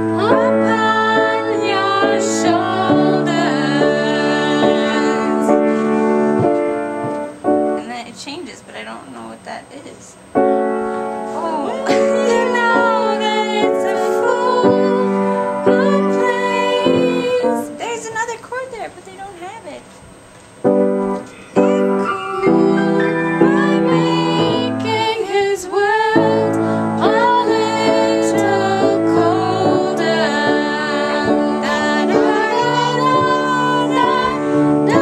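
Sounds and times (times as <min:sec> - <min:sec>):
piano chords ringing: 0:00.0 - 0:18.8, 0:20.6 - 0:35.0.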